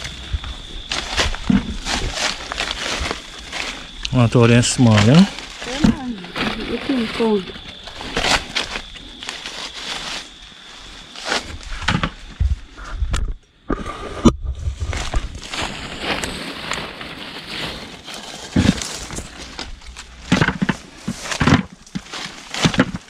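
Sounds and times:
low bumps: 0.0 - 7.9
leaves rustling and crackling: 0.0 - 12.3, 14.6 - 23.0.

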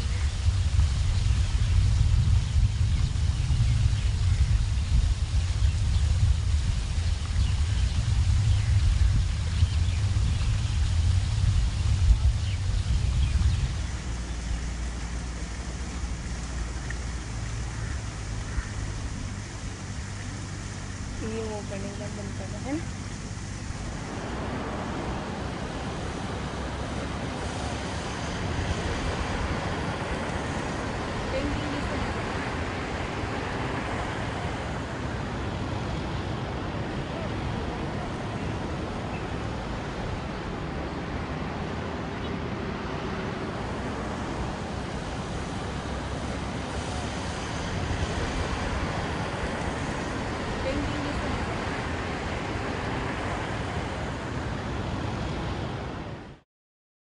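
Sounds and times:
cars passing on a road: 0.0 - 56.4.

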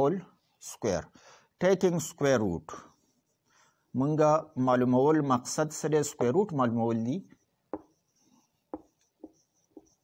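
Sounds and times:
marker pen writing on whiteboard: 1.9 - 10.0.

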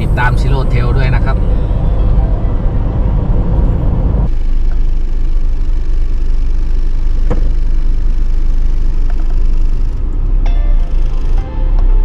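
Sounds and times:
road and engine rumble in cabin: 0.0 - 12.0.

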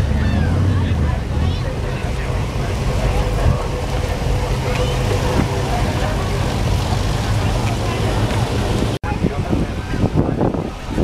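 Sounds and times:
car engine rumbling: 0.0 - 9.6
crowd chattering: 0.0 - 11.0.

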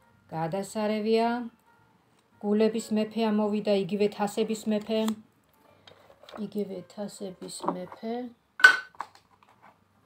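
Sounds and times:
hard object clinking: 8.6 - 9.1.

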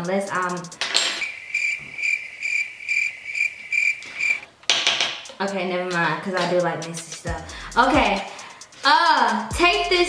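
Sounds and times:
cricket chirping: 1.2 - 4.4.

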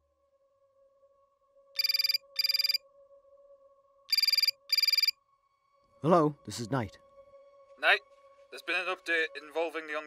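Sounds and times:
telephone ringing: 1.8 - 2.8, 4.1 - 5.1.

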